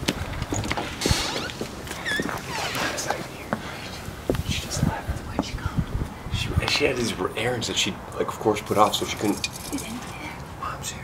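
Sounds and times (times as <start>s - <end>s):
footsteps: 0.0s - 6.9s
hushed whispering: 2.7s - 6.8s, 9.7s - 11.0s.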